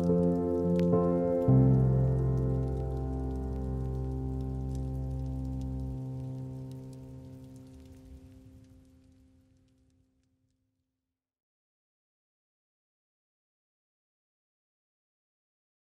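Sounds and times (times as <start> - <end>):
ambient music with held chords: 0.0 - 8.9.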